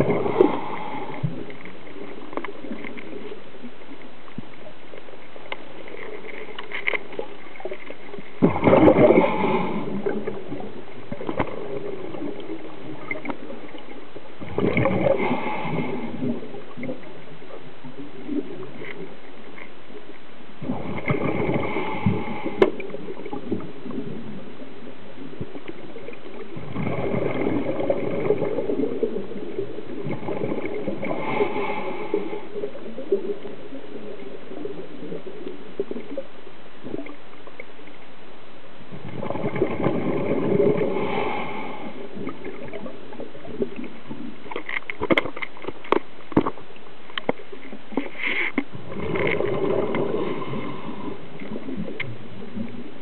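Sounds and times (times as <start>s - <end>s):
underwater bubbling and gurgling: 0.0s - 53.0s.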